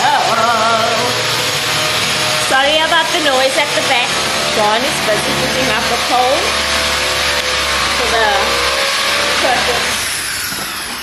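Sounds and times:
woman and girl vocalizing: 0.0 - 1.2.

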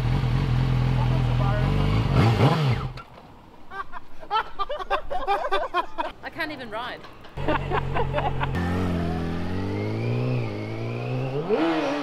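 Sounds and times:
motorcycle engine revving: 0.0 - 3.0, 7.8 - 12.0.

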